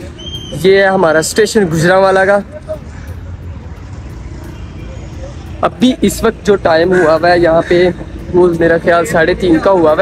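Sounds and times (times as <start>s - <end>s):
distant road traffic rumble: 0.0s - 10.0s.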